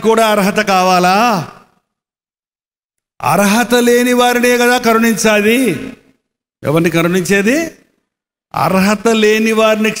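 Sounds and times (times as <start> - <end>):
man speaking into a microphone: 0.0 - 1.8, 3.2 - 10.0.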